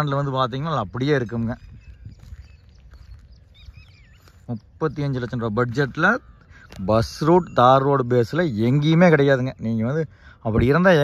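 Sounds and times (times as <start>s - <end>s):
wind rumble on microphone: 0.0s - 9.7s
faint bird chirps: 0.0s - 10.4s.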